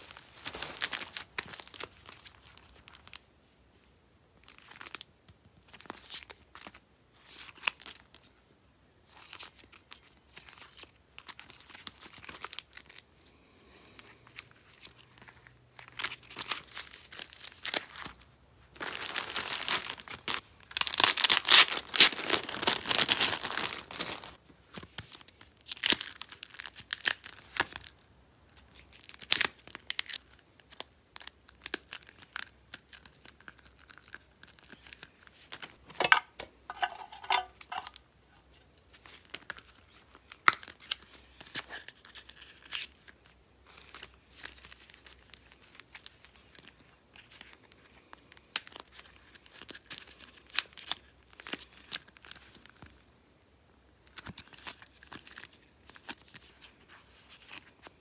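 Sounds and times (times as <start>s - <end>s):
plastic packaging crinkling: 0.0s - 3.2s, 14.3s - 28.0s, 28.6s - 38.0s, 38.9s - 53.0s, 54.0s - 58.0s.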